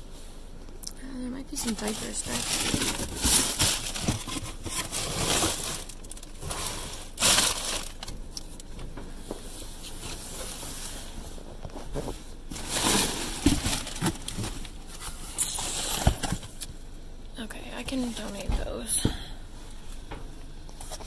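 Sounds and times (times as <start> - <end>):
cardboard and plastic rustling: 1.5 - 16.7, 17.9 - 19.0, 19.9 - 21.0.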